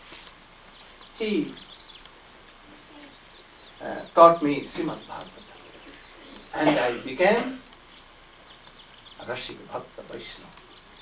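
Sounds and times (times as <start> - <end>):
faint bird calls: 0.3 - 11.0
man speaking: 1.2 - 1.6, 3.8 - 5.4, 6.5 - 7.6, 9.2 - 10.6.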